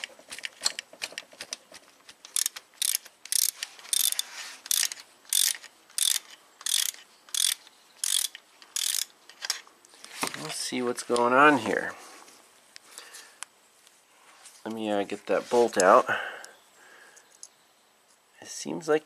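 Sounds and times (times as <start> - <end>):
ratchet wrench clicking: 2.2 - 9.1.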